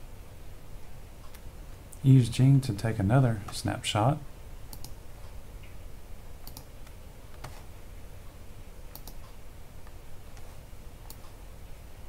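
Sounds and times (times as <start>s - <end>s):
faint background noise: 0.0s - 12.0s
computer mouse clicks: 4.7s - 5.0s, 6.4s - 7.6s, 8.9s - 11.4s.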